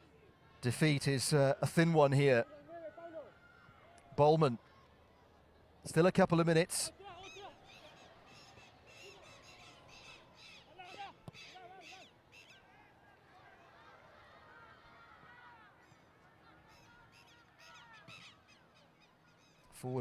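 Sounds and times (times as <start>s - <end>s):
stadium ambience: 0.0s - 20.0s
distant players shouting: 6.9s - 18.5s.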